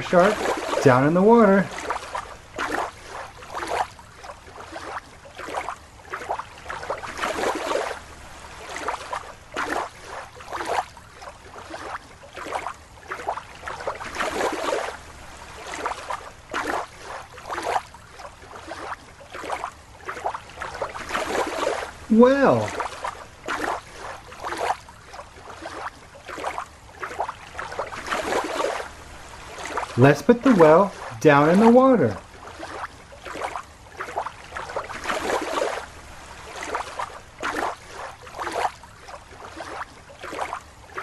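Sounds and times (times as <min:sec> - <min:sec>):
water splashing and sloshing: 0:00.0 - 0:41.0.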